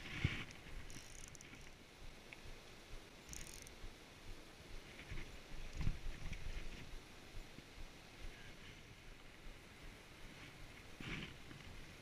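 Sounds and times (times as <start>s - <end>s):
wind rumble on microphone: 3.8s - 12.0s.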